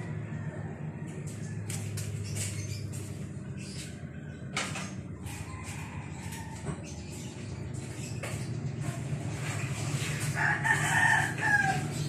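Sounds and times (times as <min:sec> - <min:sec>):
rooster crowing: 0:10.4 - 0:12.0.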